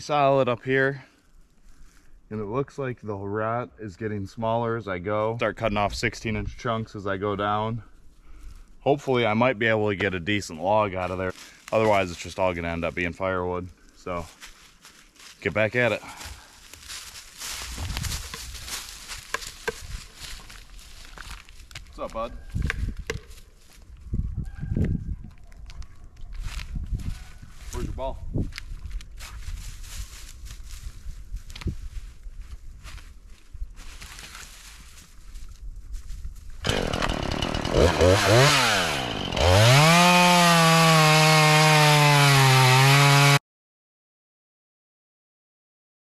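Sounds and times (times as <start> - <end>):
footsteps in dry leaves: 11.0 - 12.5, 14.0 - 22.5, 23.2 - 24.2, 25.5 - 36.7
chainsaw cutting log: 36.6 - 43.4.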